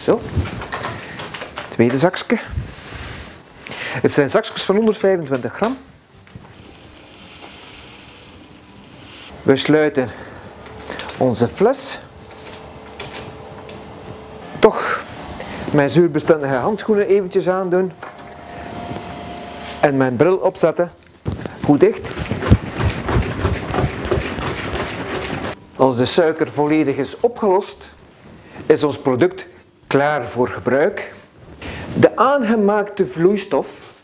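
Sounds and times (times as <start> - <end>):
powder pouring into bottle: 6.4 - 9.4.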